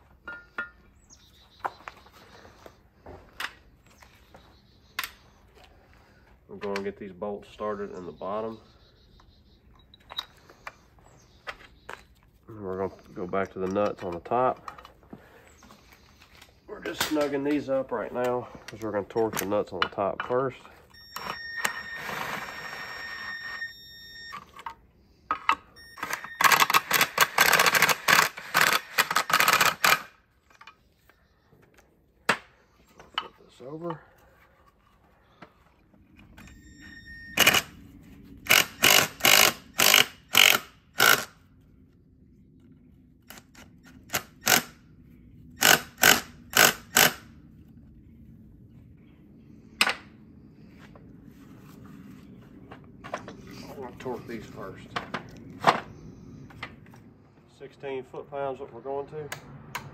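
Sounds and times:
cordless drill motor whine: 20.9 - 24.5
drill clutch clicking: 26.0 - 30.0, 38.5 - 41.3.

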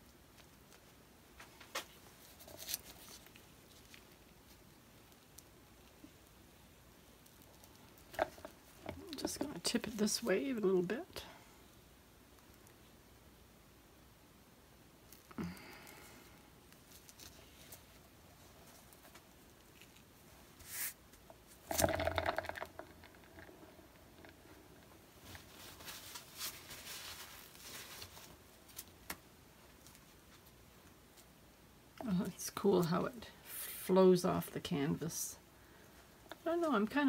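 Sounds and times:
soft rustling hiss: 0.0 - 37.0.

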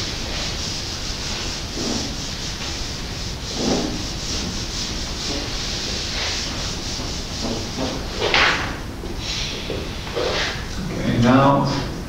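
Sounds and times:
eraser rubbing on whiteboard: 0.0 - 8.6.

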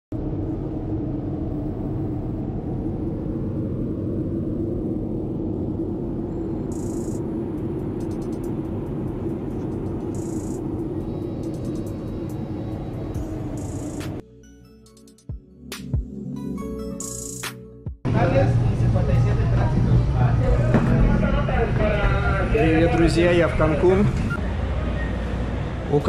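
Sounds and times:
jet cabin engine drone: 0.1 - 14.2, 18.1 - 26.0.

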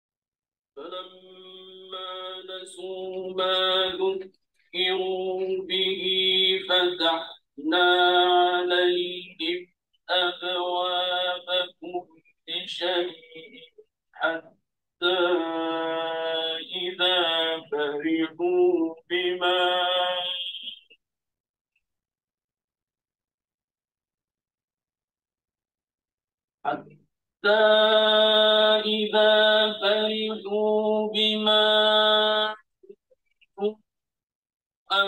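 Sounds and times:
man chanting recitation: 0.8 - 20.8, 26.7 - 32.6.

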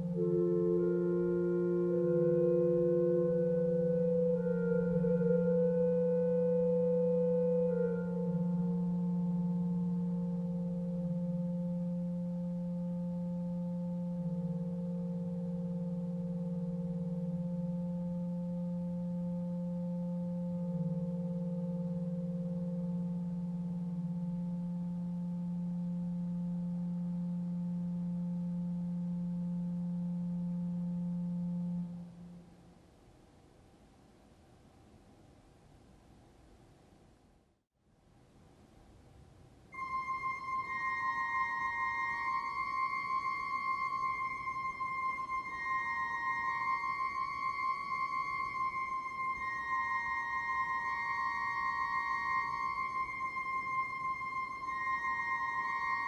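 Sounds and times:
pipe organ chords: 0.0 - 32.4, 39.8 - 56.0.

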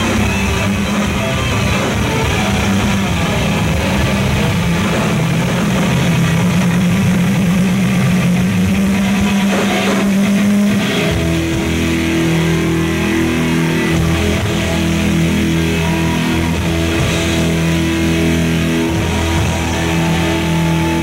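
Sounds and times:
bass guitar: 0.0 - 21.0
distorted electric guitars: 0.0 - 21.0
drums: 0.0 - 21.0.

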